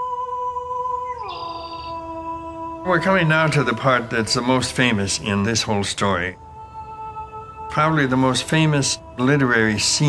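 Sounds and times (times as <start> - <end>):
wordless singing voice: 0.0 - 10.0.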